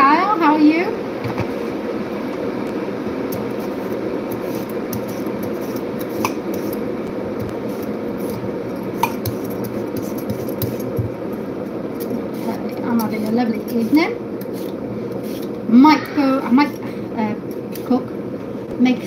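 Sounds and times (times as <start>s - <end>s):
steady rushing background noise: 0.0s - 19.0s
vegetable peeler scraping potato: 3.4s - 6.8s, 9.0s - 11.1s, 12.0s - 16.8s.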